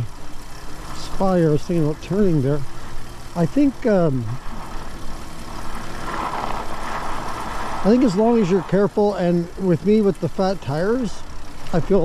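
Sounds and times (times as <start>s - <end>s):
bike tires rolling over icy snow: 0.0s - 12.0s.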